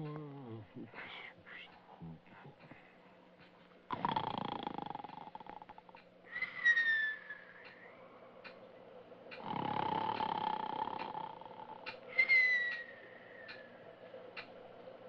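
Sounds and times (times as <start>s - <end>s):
rough buzzing snore: 3.9s - 6.0s, 9.4s - 12.0s
falling whistle: 12.1s - 13.6s.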